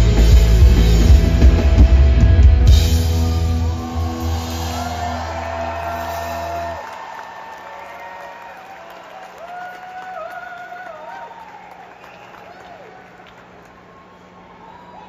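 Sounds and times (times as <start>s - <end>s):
rock band chord: 0.0s - 6.8s.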